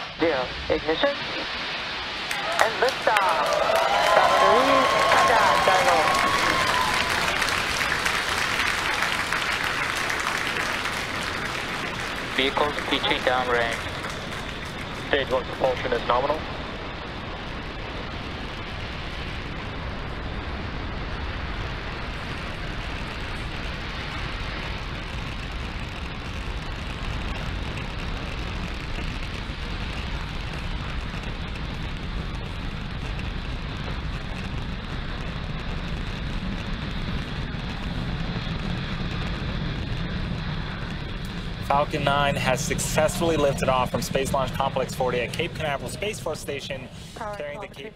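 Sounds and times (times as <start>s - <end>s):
rocket engine rumble: 0.0s - 47.9s.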